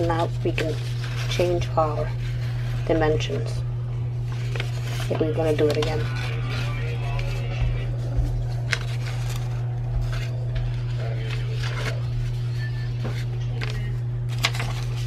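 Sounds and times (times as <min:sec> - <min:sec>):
paper rustling and crinkling: 0:00.0 - 0:15.0
steady low hum: 0:00.0 - 0:15.0.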